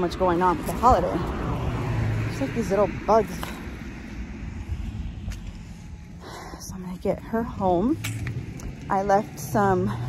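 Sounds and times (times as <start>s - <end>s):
street background rumble: 0.0s - 10.0s.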